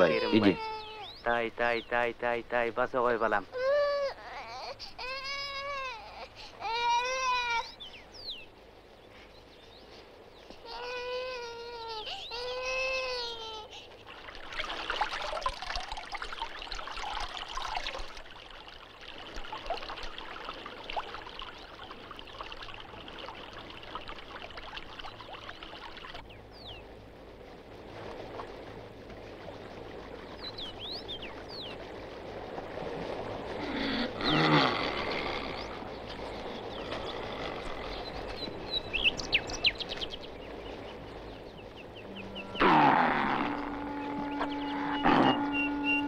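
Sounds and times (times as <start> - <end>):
small child crying: 0.0 - 1.1, 3.5 - 7.8, 10.6 - 13.8
water trickling: 12.4 - 26.3
water splashing and pouring: 13.8 - 26.3.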